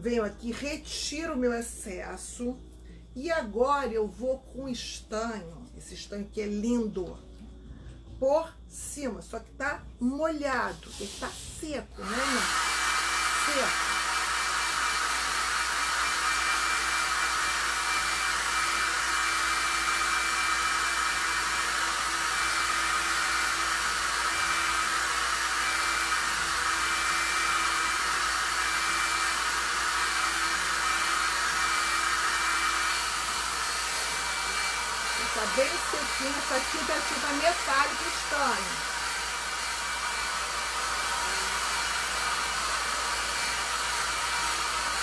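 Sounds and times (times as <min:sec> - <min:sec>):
hair dryer running: 0:12.0 - 0:45.0.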